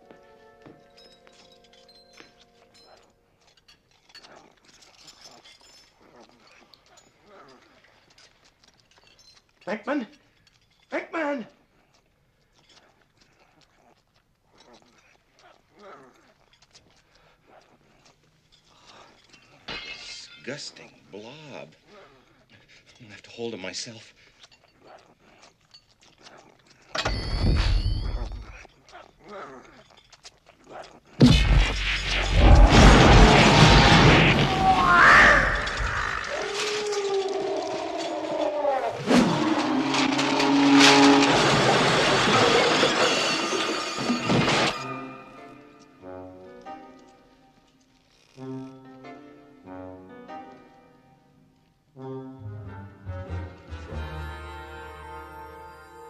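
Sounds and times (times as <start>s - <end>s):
gurgling gobbling creature noises: 32.1s - 40.8s.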